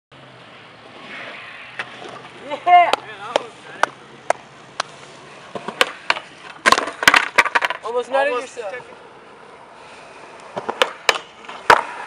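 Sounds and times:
skateboard rolling: 0.2s - 12.0s
skateboard slapping down: 5.5s - 7.9s, 10.5s - 12.0s
skateboard knocks on concrete: 5.6s - 7.8s, 10.6s - 12.0s.

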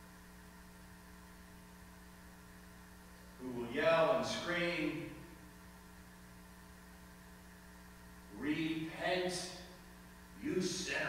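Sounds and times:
low electrical hum: 0.0s - 11.0s
man speaking: 3.4s - 5.3s, 8.4s - 9.7s, 10.4s - 11.0s.

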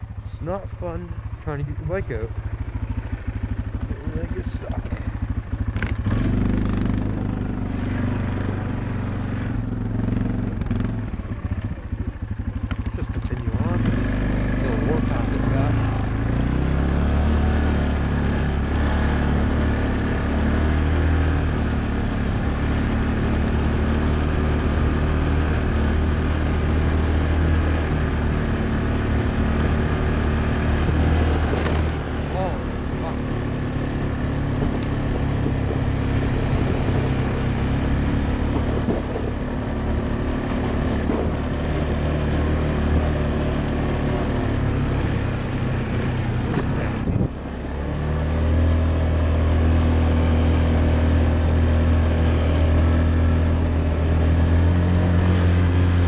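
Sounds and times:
atv engine under throttle: 0.0s - 56.0s.

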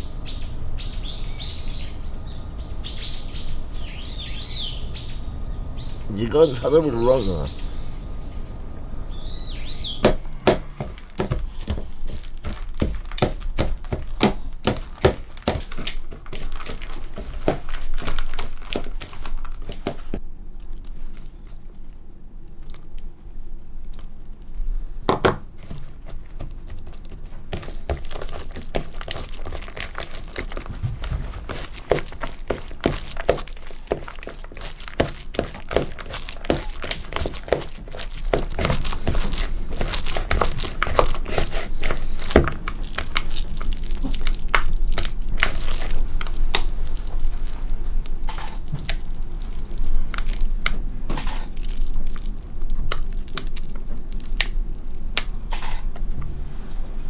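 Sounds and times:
hands kneading crumbly mixture: 9.6s - 23.1s, 23.8s - 55.9s.

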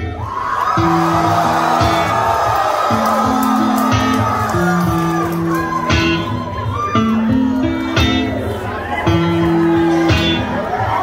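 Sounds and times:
live rock band playing: 0.8s - 11.0s.

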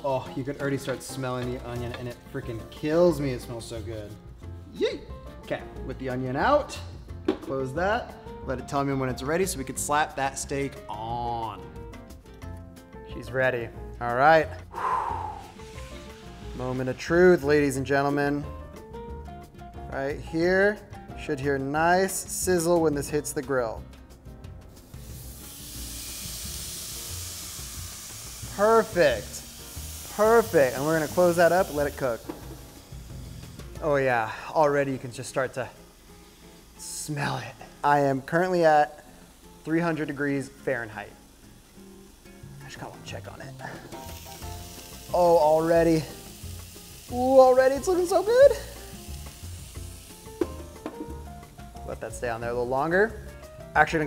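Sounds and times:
steak sizzling on a grill: 0.0s - 4.6s, 7.8s - 19.5s, 20.3s - 54.0s
soft background music: 0.0s - 54.0s.

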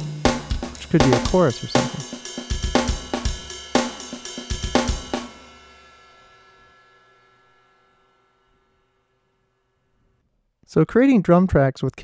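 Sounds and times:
cymbal ringing: 0.0s - 10.0s.

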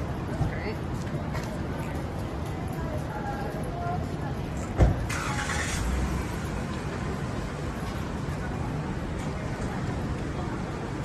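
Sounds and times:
low city street rumble: 0.0s - 11.0s.

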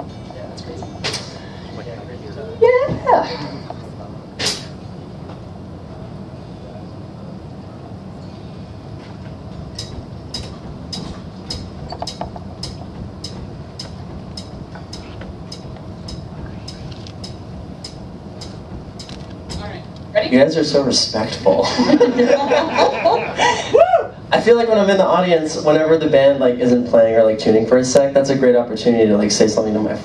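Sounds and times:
amplifier hum: 0.0s - 30.0s.

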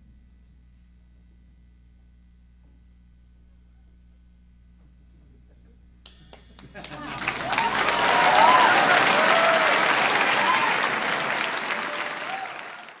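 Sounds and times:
audience applauding and cheering: 6.8s - 13.0s
whistling in crowd: 7.3s - 13.0s.

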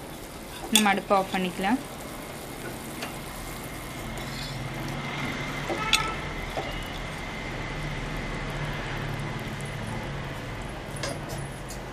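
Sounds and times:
curry bubbling in a pot: 0.0s - 11.9s.

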